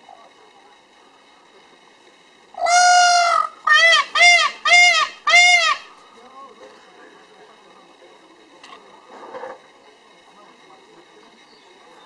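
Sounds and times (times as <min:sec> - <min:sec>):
peacock calling loudly: 0:02.6 - 0:06.0.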